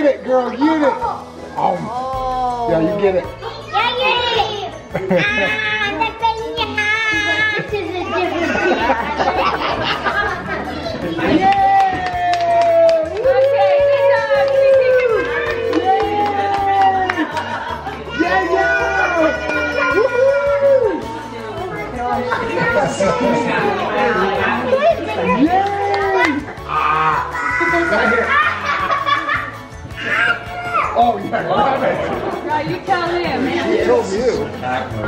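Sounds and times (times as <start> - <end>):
background music: 0.0 - 35.0
indistinct chatter: 0.0 - 35.0
baby squealing: 26.7 - 28.6, 30.0 - 31.0.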